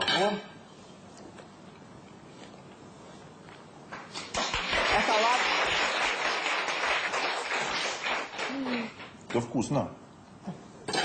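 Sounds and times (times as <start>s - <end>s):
audience applause: 4.3s - 9.2s.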